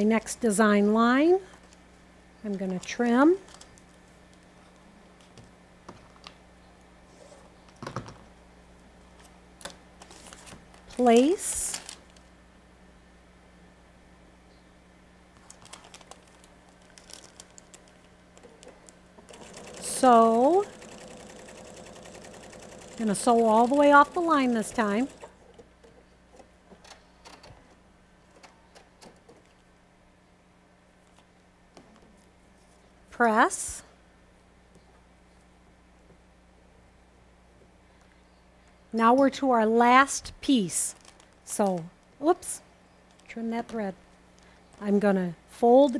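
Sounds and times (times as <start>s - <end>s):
low steady hum: 0.0s - 45.9s.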